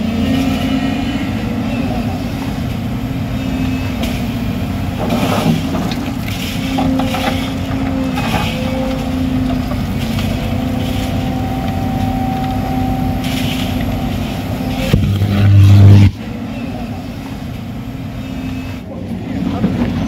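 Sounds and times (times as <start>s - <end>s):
hydraulic whine: 0.0s - 19.0s
excavator diesel engine: 0.0s - 20.0s
bucket scraping asphalt: 5.0s - 11.4s, 13.2s - 16.2s.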